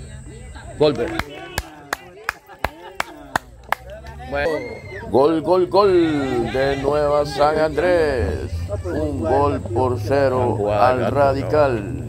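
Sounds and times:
rhythmic hand clapping: 0.9s - 4.2s
people shouting: 4.3s - 10.0s.

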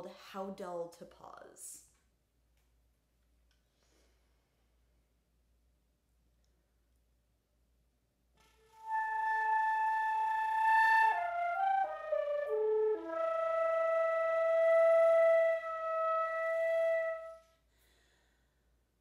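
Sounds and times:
solo flute playing: 8.4s - 17.6s.

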